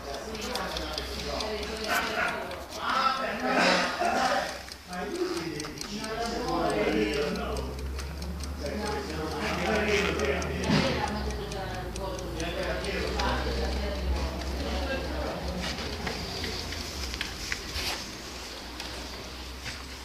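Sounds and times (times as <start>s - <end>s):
people talking: 0.0s - 19.4s
clockwork timer ticking: 0.0s - 20.0s.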